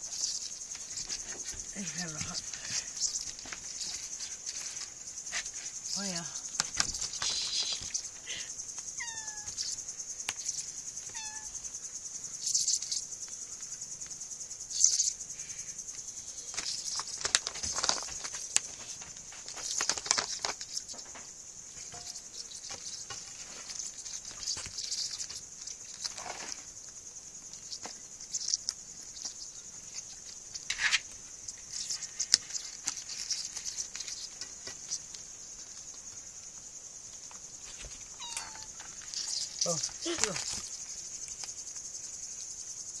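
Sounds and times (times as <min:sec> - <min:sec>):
high-pitched insect trill: 0:00.0 - 0:43.0
kittens scuffling on floor: 0:00.1 - 0:08.2, 0:16.5 - 0:26.7, 0:37.3 - 0:41.5.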